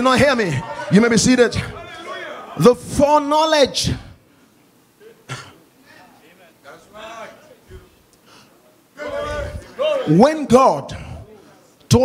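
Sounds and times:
faint murmured voices: 4.4s - 10.1s
person clearing throat: 5.3s - 5.6s.

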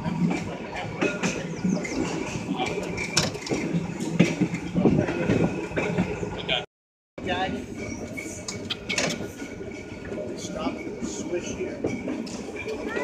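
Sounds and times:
tram running on rails: 0.0s - 13.0s.

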